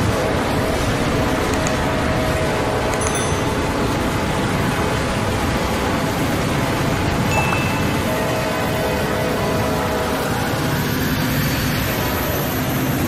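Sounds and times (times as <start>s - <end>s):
train noise: 0.0s - 13.0s
chime-like sound effects: 3.0s - 3.8s, 7.3s - 8.1s.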